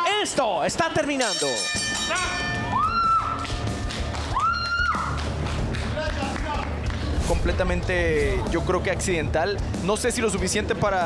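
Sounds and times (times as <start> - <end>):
background music with steady bass: 0.0 - 11.0.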